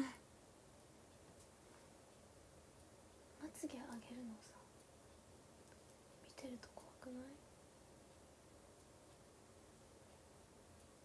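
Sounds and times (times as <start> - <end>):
woman's soft voice: 3.4 - 4.7, 6.2 - 7.4.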